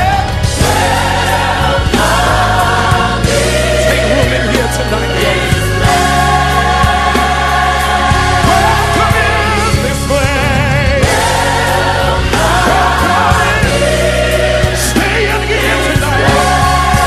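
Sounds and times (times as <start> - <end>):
bass and keyboard accompaniment: 0.0 - 17.0
choir singing: 0.0 - 17.0.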